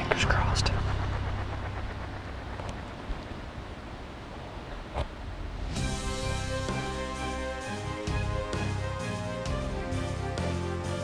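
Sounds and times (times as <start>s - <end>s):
low rumble: 0.0s - 10.1s.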